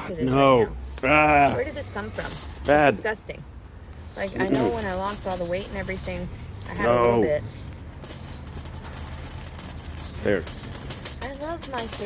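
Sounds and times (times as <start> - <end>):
person speaking: 4.4 - 4.9.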